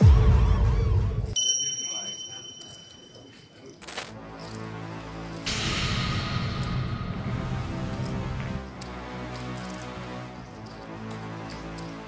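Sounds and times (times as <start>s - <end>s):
background music: 0.0s - 12.0s
high ringing tone: 1.4s - 3.9s
sharp hit: 5.5s - 8.6s.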